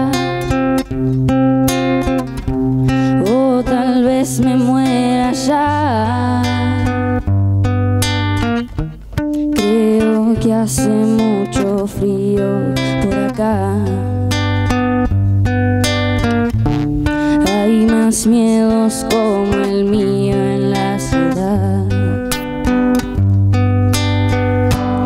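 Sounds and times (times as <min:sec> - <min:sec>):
woman singing slow song: 0:00.0 - 0:00.8, 0:02.9 - 0:07.2, 0:09.5 - 0:14.4, 0:17.0 - 0:22.4
acoustic guitar: 0:00.0 - 0:25.0.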